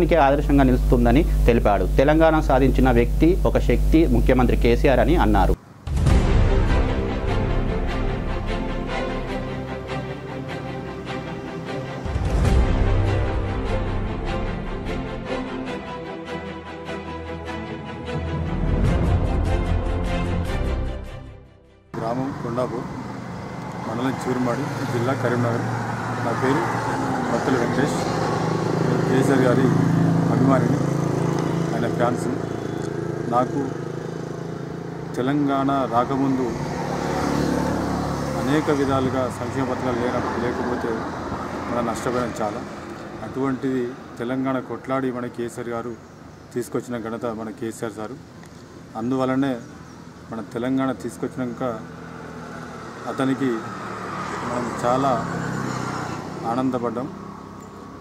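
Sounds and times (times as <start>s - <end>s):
man speaking: 0.0s - 5.6s, 22.0s - 23.0s, 31.7s - 32.4s, 35.2s - 36.6s, 38.4s - 46.0s.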